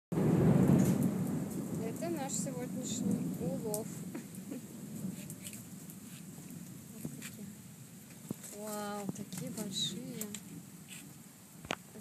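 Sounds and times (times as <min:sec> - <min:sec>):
low rumbling noise: 0:00.1 - 0:10.8
woman speaking: 0:01.8 - 0:04.0, 0:06.9 - 0:07.6, 0:08.5 - 0:10.4.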